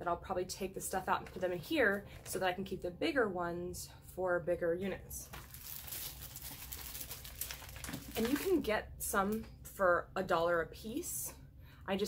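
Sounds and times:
low steady hum: 0.0 - 12.0
plastic bags crinkling: 5.2 - 8.7.

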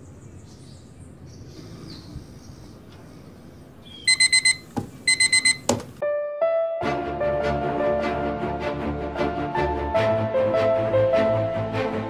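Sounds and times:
digital alarm clock beeping: 4.1 - 5.8
keyboard music: 5.1 - 12.0.

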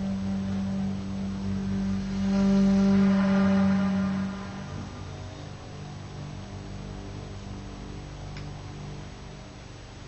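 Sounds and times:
low musical drone: 0.0 - 10.0.

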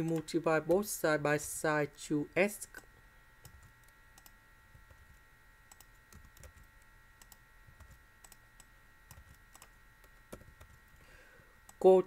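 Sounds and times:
faint high electrical whine: 0.0 - 12.0
keyboard keys clicking: 9.1 - 9.7.

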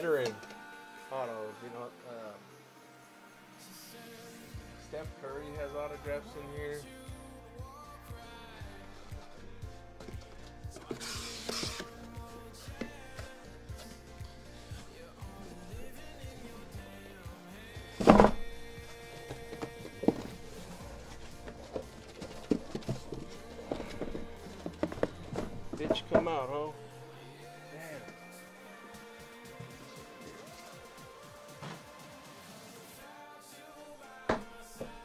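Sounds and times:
background music with steady beat: 0.0 - 35.0
cardboard scraping rasp: 10.8 - 12.1.

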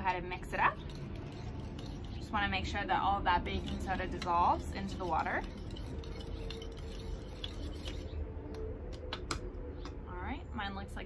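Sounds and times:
metal spoon stirring in glass bowl: 0.4 - 8.2.

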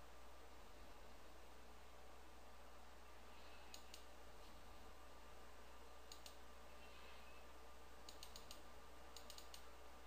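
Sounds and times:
low steady hum: 0.0 - 10.0
computer mouse clicks: 3.6 - 4.1, 6.0 - 6.4, 8.0 - 9.7.

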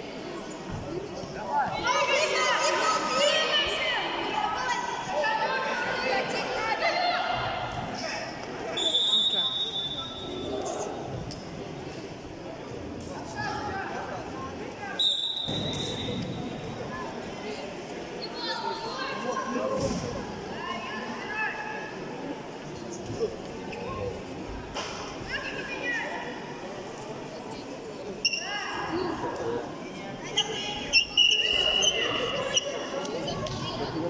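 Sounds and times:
voices and hall chatter: 0.0 - 34.0
referee's whistle: 8.7 - 10.6, 15.0 - 16.4, 31.0 - 32.2.

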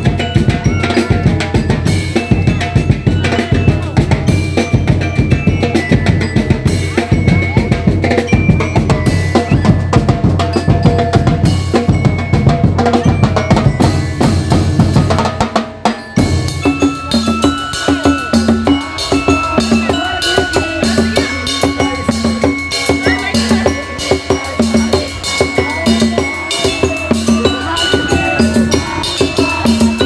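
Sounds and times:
percussion band drumming: 0.0 - 30.0.

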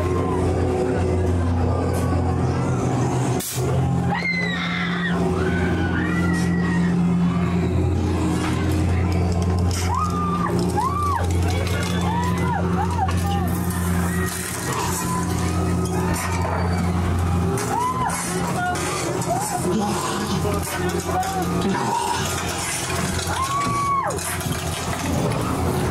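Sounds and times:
low droning soundtrack: 0.0 - 25.9.

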